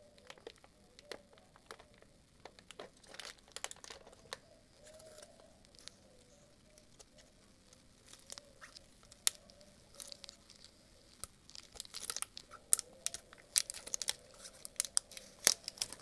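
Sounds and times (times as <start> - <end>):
plastic wrapping crinkling: 0.0 - 16.0.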